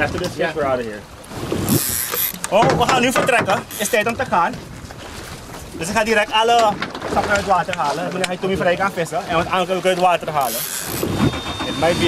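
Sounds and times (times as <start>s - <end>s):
fishing reel drag whirring: 1.5s - 2.5s, 3.6s - 4.0s, 10.4s - 12.0s
thin whine: 10.4s - 12.0s.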